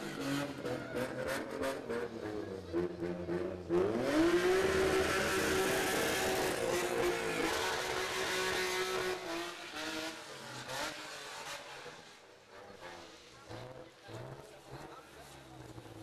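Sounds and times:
car engine revving: 0.0 - 16.0.

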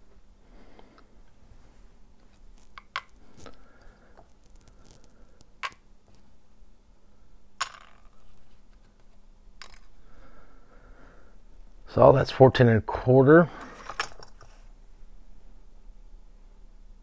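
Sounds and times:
faint handling rustle: 0.8 - 5.5.

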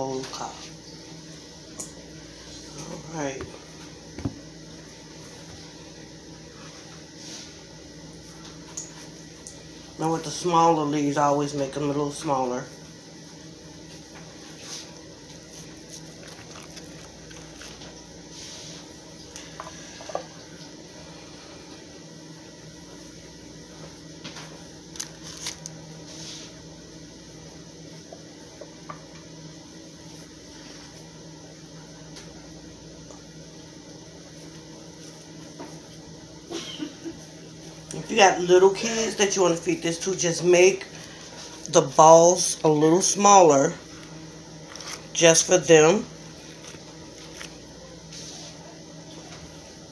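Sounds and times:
steady low hum: 0.0 - 49.9
squishing of meat shaped by hand: 12.7 - 22.0, 43.8 - 45.3, 46.1 - 49.5.

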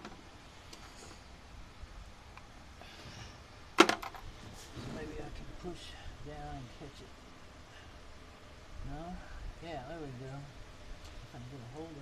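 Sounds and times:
faint background hiss: 0.0 - 12.0.

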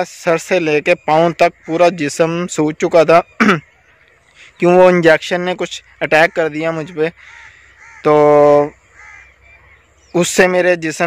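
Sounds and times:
faint short bird calls: 1.0 - 5.0, 5.8 - 10.4.

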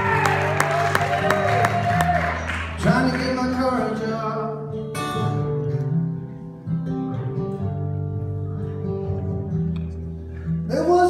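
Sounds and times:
acoustic guitars picking notes: 0.0 - 11.0.

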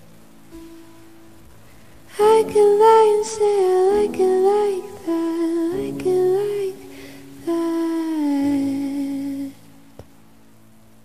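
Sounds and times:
soft backing music: 0.0 - 11.0
woman singing pop song: 2.1 - 9.7.

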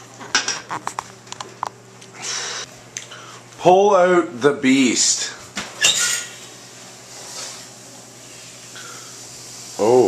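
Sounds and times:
soft scraping and rustling: 6.1 - 8.6.

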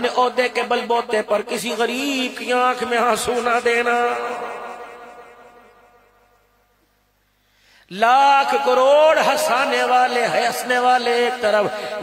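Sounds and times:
man's amplified voice echoing: 0.0 - 6.6, 7.7 - 12.0.

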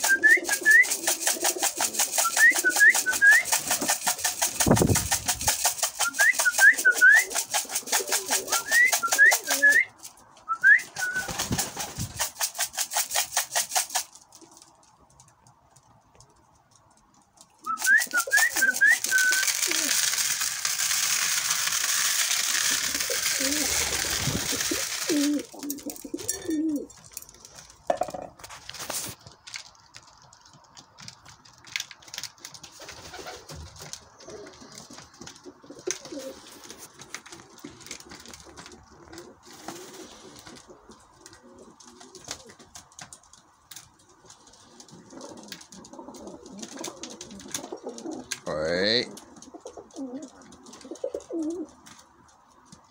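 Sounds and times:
pigeons cooing softly: 0.0 - 4.1, 5.9 - 9.9, 22.6 - 27.4, 33.0 - 36.8, 37.4 - 42.8, 44.2 - 52.9
beaks clicking on grain and plastic: 0.0 - 10.0, 17.4 - 28.1.

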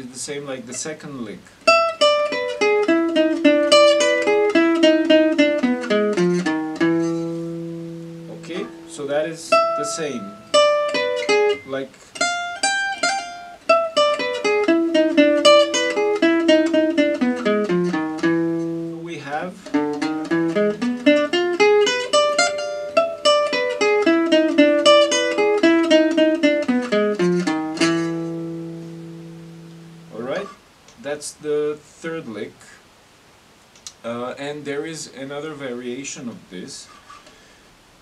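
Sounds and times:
jazz guitar lick: 1.4 - 31.0.

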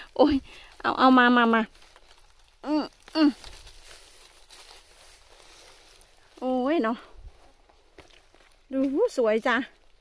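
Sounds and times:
rustling in dry leaves: 0.0 - 10.0.

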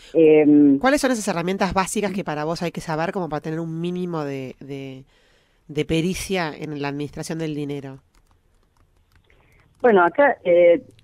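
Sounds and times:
woman speaking: 0.2 - 5.0, 5.7 - 8.0, 9.8 - 11.0
faint clicks: 8.1 - 9.9.

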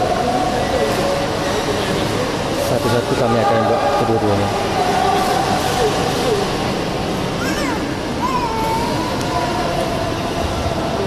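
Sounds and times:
indoor sports hall noise: 0.0 - 11.0.

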